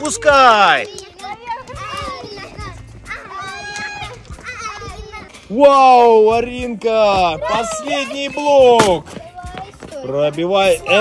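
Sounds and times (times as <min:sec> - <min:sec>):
background music: 0:00.0 - 0:11.0
children calling out and squealing: 0:00.6 - 0:05.6, 0:07.4 - 0:10.0.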